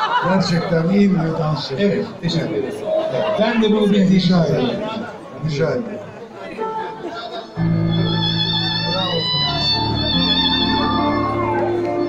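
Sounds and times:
live band playing: 0:07.6 - 0:12.0.

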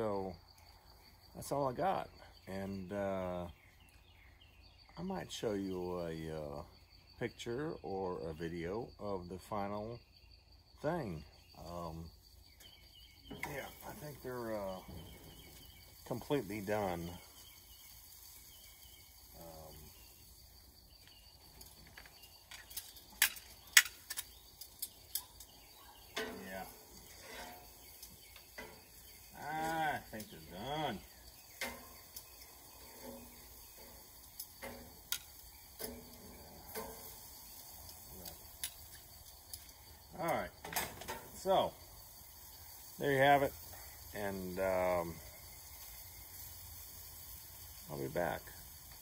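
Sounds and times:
faint background hiss: 0:00.0 - 0:49.0
tongs clacking on grill grate: 0:12.6 - 0:41.5.

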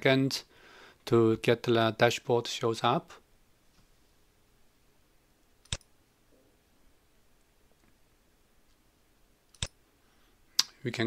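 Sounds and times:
computer mouse click: 0:05.6 - 0:05.9, 0:09.5 - 0:09.8.

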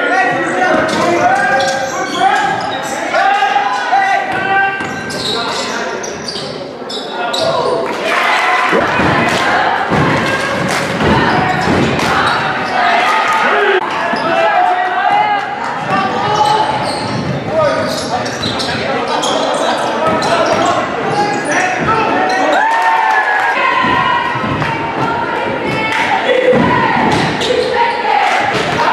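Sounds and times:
voices echoing in a hall: 0:00.0 - 0:28.9.

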